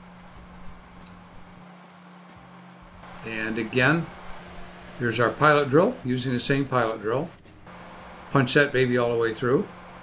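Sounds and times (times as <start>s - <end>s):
milling machine low hum: 0.0s - 10.0s.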